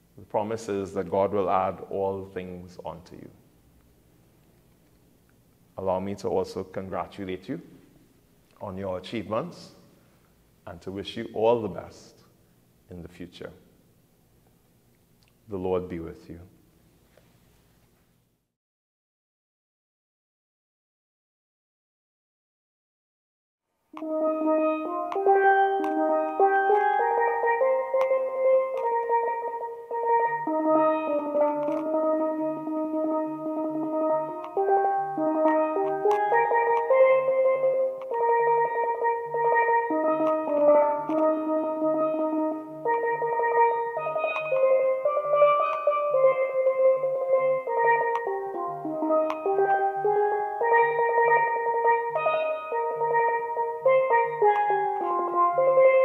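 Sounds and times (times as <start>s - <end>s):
steelpan melody: 24.0s - 56.0s.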